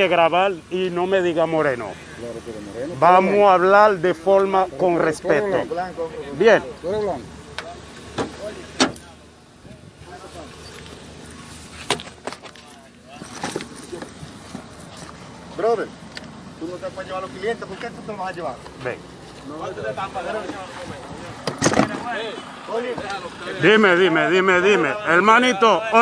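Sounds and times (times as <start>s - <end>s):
indistinct voices talking: 0.0s - 26.0s.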